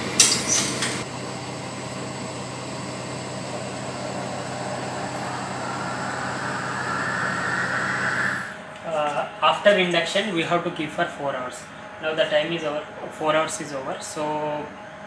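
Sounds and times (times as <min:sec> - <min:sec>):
higher whir: 0:01.0 - 0:08.8
incubator low hum: 0:01.0 - 0:08.8.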